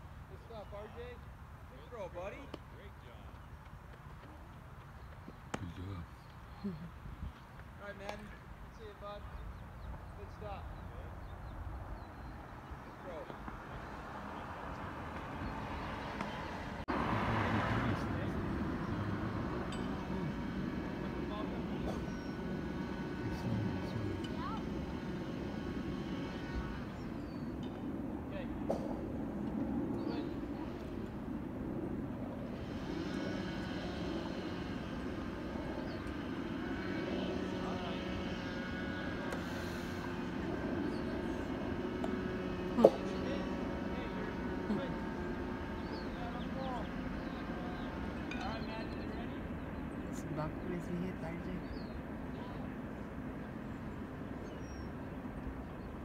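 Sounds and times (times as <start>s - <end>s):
traffic hum: 0.0s - 56.0s
distant voices: 0.2s - 56.0s.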